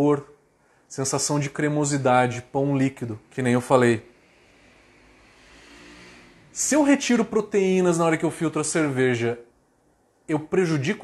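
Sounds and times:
faint background noise: 0:00.0 - 0:11.0
low hum: 0:01.5 - 0:09.0.

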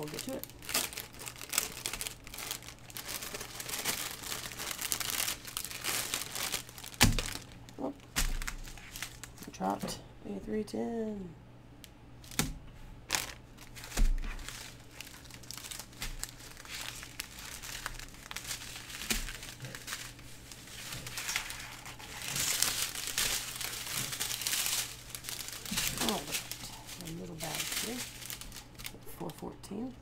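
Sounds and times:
plastic bags crinkling: 0:00.0 - 0:09.6, 0:13.1 - 0:30.0.

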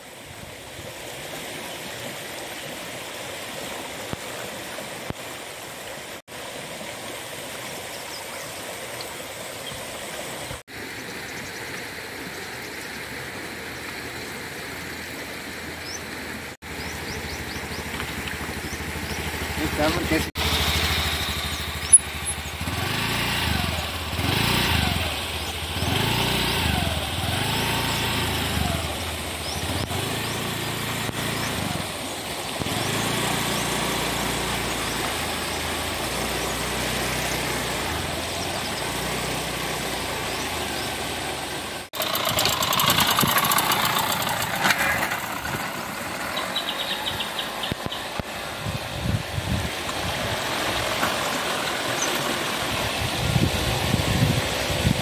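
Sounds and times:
scooter engine running unevenly: 0:16.7 - 0:55.0.

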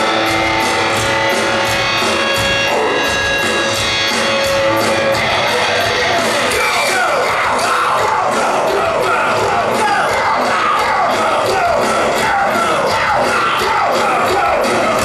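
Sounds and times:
crowd: 0:00.0 - 0:15.0
rock band playing live: 0:00.0 - 0:15.0.

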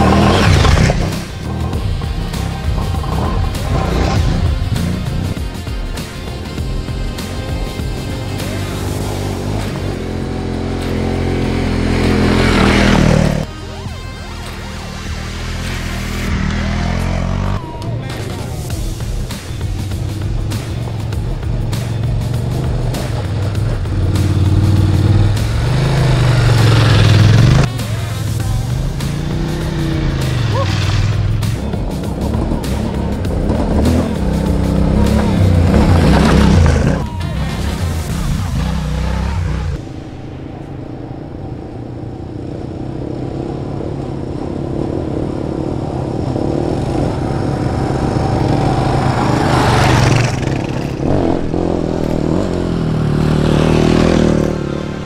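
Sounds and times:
motorcycle engines revving: 0:00.0 - 0:55.0.

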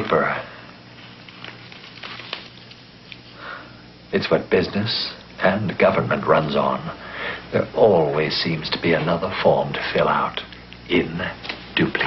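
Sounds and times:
person speaking: 0:00.0 - 0:00.6, 0:04.1 - 0:12.0
low hum and hiss: 0:00.0 - 0:12.0
person breathing in: 0:03.3 - 0:03.9, 0:07.0 - 0:07.5.

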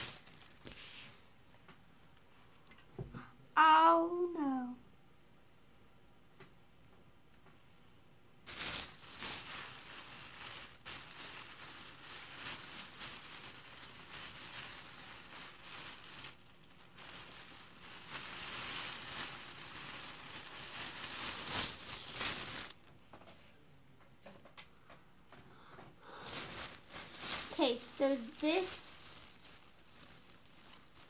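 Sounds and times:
plastic bag crinkling: 0:00.0 - 0:01.0, 0:08.4 - 0:22.9, 0:26.1 - 0:31.0.

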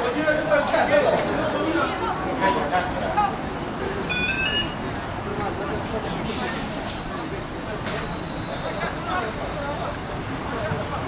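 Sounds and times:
bus passing close: 0:00.0 - 0:11.0
people talking: 0:00.0 - 0:11.0
traffic: 0:00.0 - 0:11.0
high electronic beeps: 0:04.1 - 0:04.8.

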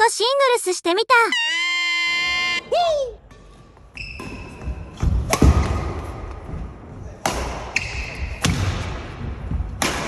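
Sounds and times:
shoe squeak on gym floor: 0:03.9 - 0:05.0
racket striking shuttlecock: 0:09.7 - 0:10.0.

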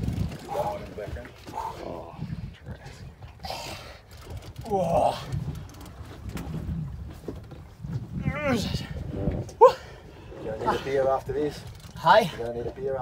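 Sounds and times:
man groaning and exclaiming: 0:04.6 - 0:05.3, 0:08.2 - 0:09.0.

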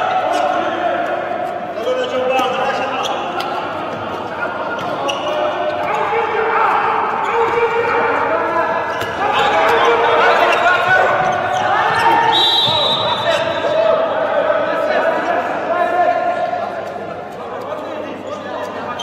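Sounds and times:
players shouting: 0:00.0 - 0:16.6.

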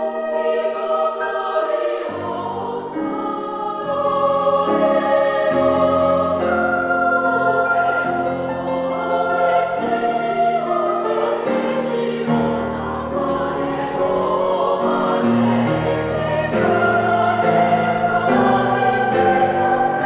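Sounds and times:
grand piano: 0:00.0 - 0:20.0
women's choir singing: 0:00.0 - 0:20.0.

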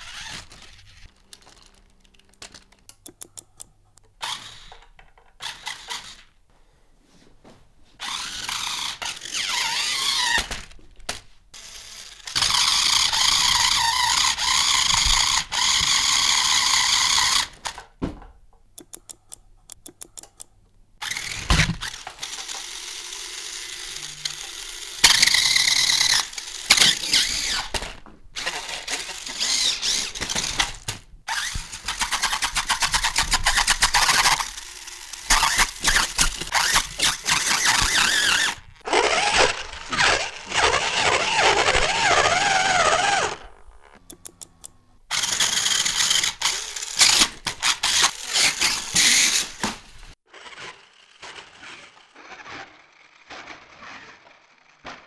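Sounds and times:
toy motors whirring and buzzing: 0:00.0 - 0:06.4, 0:08.0 - 0:17.8, 0:18.8 - 0:55.0.

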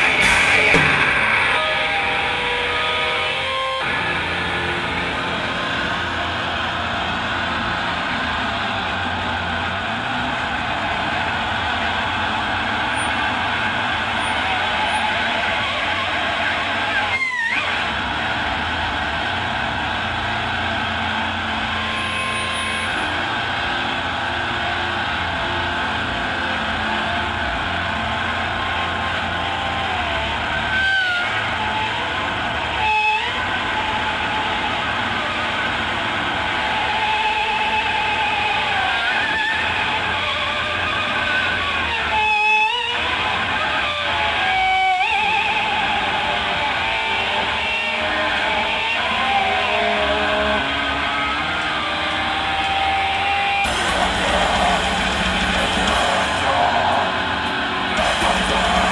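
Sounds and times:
distorted electric guitar: 0:00.0 - 0:58.9
guitar feedback whine: 0:00.0 - 0:58.9.

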